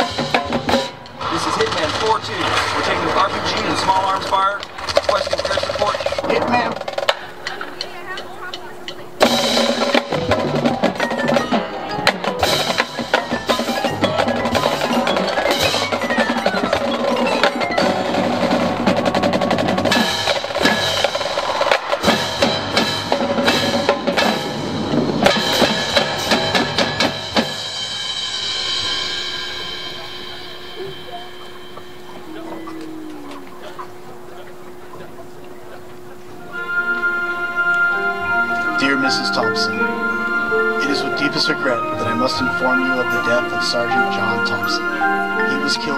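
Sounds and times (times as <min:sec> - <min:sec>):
mallet keyboards and drums: 0:00.0 - 0:45.9.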